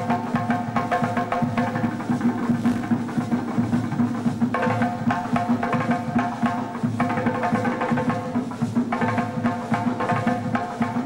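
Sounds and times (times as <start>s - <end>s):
rapid hand drumming: 0.0s - 11.0s.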